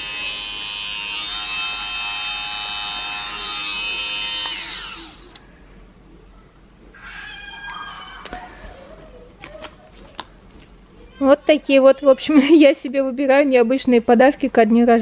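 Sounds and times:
lint remover motor whine: 0:00.0 - 0:05.4.

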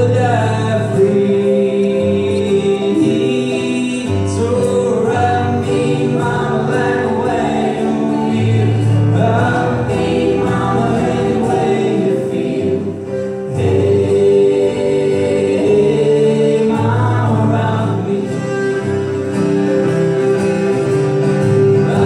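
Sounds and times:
person singing: 0:00.0 - 0:19.2, 0:21.8 - 0:22.0
strummed acoustic guitar: 0:00.0 - 0:22.0
fiddle: 0:16.6 - 0:22.0.

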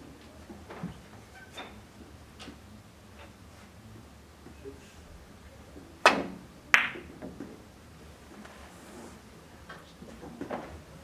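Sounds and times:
billiard ball clicks: 0:06.0 - 0:07.1.

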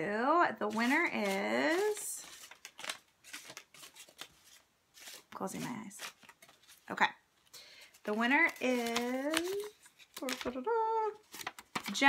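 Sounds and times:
paper rustling and crinkling: 0:00.6 - 0:07.0, 0:07.8 - 0:12.0.

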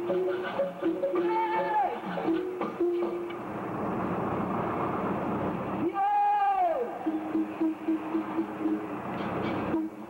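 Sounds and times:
car road and engine noise: 0:02.0 - 0:10.0.

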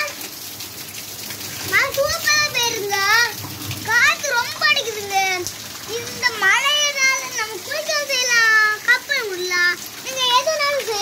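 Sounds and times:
child's voice gliding in pitch: 0:01.7 - 0:11.0.

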